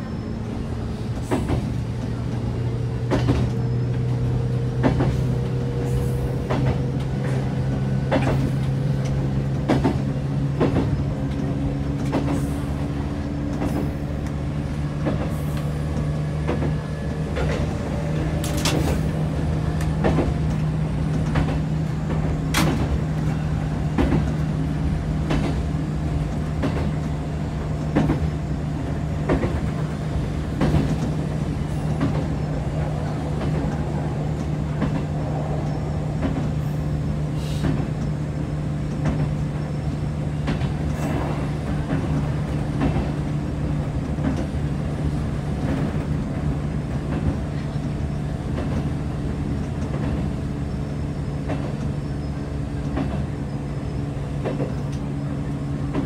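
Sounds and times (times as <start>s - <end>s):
wheels clacking over rail joints: 0.4s - 56.0s.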